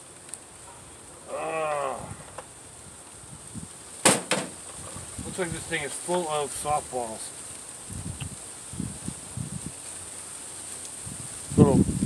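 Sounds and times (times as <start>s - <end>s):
insects chirring: 0.0s - 11.4s.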